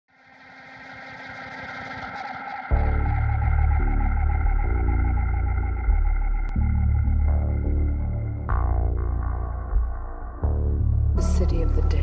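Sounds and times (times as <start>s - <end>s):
synthesizer drone: 0.1s - 12.0s
fast low pulse: 2.7s - 12.0s.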